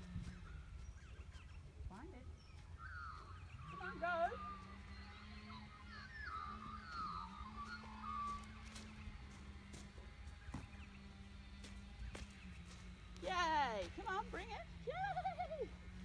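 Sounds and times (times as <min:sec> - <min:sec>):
wind rumble on microphone: 0:00.0 - 0:11.0
birds warbling: 0:00.0 - 0:16.0
steady low hum: 0:00.0 - 0:16.0.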